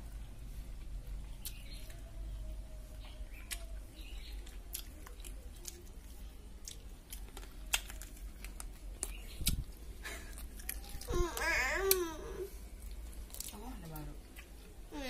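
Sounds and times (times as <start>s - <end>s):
child chewing food: 0.0s - 15.0s
low steady hum: 0.0s - 15.0s.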